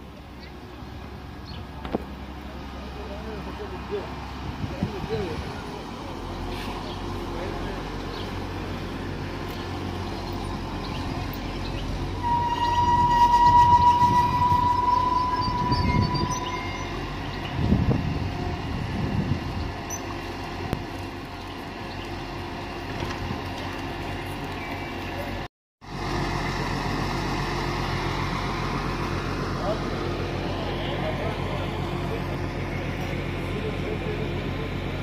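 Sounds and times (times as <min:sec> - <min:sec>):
train low rumble: 0:00.0 - 0:35.0
train brakes squealing: 0:12.2 - 0:17.6.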